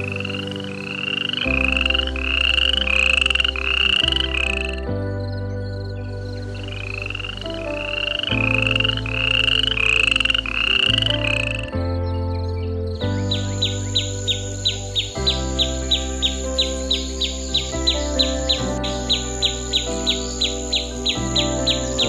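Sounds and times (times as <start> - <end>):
rising chirping call: 0.0 - 22.0
steady low drone: 0.0 - 22.0.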